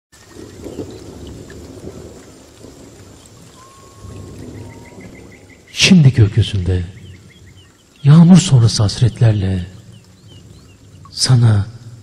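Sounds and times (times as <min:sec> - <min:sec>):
rain hissing: 0:00.1 - 0:12.0
low rolling thunder: 0:00.2 - 0:12.0
man speaking: 0:05.8 - 0:07.0, 0:08.0 - 0:09.8, 0:11.1 - 0:11.9.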